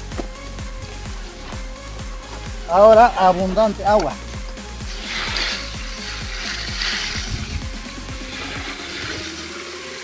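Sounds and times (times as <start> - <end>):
background music: 0.0 - 10.0
water pouring and splashing: 3.2 - 10.0.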